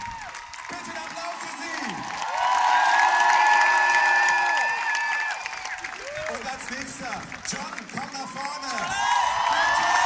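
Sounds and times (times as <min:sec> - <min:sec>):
crowd cheering and screaming: 0:00.0 - 0:06.8, 0:08.0 - 0:10.0
applause: 0:00.0 - 0:10.0.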